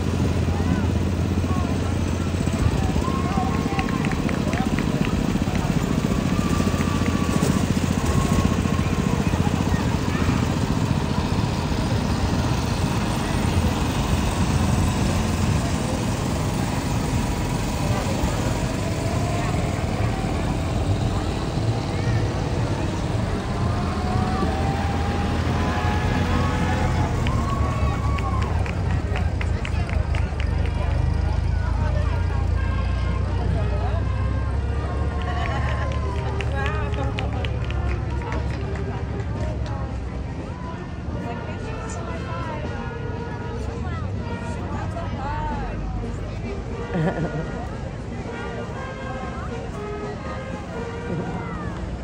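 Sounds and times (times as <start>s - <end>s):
tractor engine: 0.0s - 38.8s
people talking: 0.0s - 52.0s
vehicle engines rumbling: 0.0s - 52.0s.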